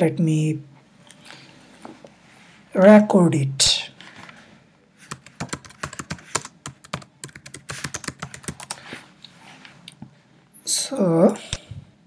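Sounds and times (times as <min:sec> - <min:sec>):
computer keyboard typing: 0:05.1 - 0:08.8.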